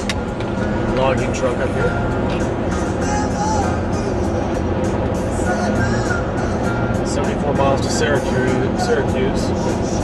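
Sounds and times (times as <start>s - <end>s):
engine and road noise: 0.0s - 10.0s
music on car stereo: 0.0s - 10.0s.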